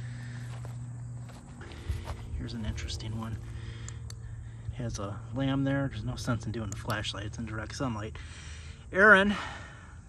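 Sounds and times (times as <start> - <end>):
footsteps on grass: 0.0 - 3.8
low steady hum: 0.0 - 10.0.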